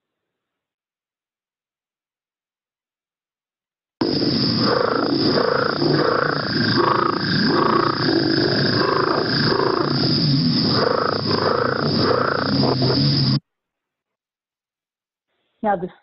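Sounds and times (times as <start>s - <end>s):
frog call growling notes: 4.0s - 13.4s
steady high-pitched background: 4.0s - 13.4s.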